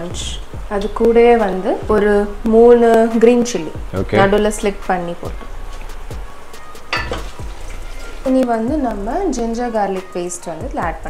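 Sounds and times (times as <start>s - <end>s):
food sizzling in oil: 4.4s - 10.4s.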